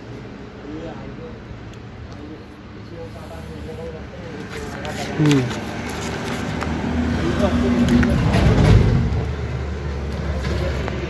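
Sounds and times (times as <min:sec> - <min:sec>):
low engine rumble: 0:00.0 - 0:11.0
street noise: 0:00.0 - 0:11.0.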